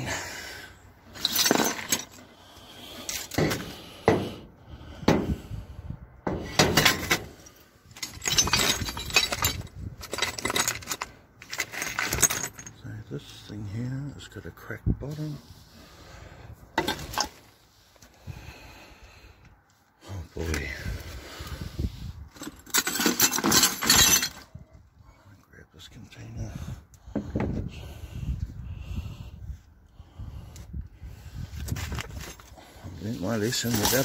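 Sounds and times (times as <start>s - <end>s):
ceramic and glass shards clattering: 1.2s - 2.2s, 7.9s - 12.8s, 22.4s - 24.5s.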